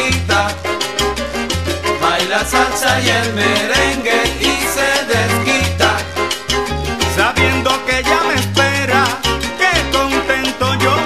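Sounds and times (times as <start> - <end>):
salsa band playing: 0.6 - 11.0.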